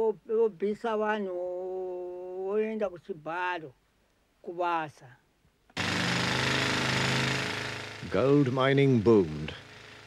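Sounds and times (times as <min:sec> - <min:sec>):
pneumatic rock drill drilling: 0:05.8 - 0:08.5.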